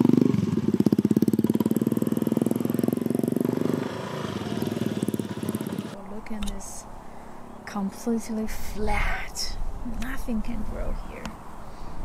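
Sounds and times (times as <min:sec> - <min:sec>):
motorcycle engine passing: 0:00.0 - 0:06.0.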